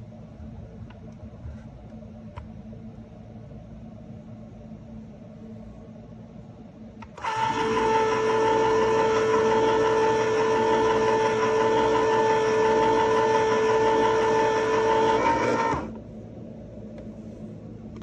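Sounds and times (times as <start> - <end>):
can opener motor whine: 7.0 - 16.0.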